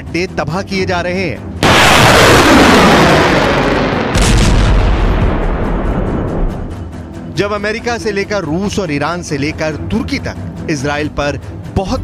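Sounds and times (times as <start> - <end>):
explosion rumbling: 1.6 - 6.7
sharp explosion blast: 1.6 - 6.7.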